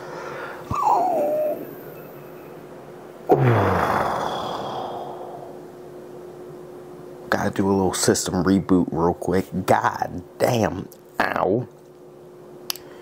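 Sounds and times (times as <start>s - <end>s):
breathy exhale: 0.0s - 0.7s, 3.3s - 5.6s
man groaning: 0.7s - 1.7s, 3.3s - 5.6s
man whimpering in pain: 0.7s - 1.8s, 3.3s - 5.5s.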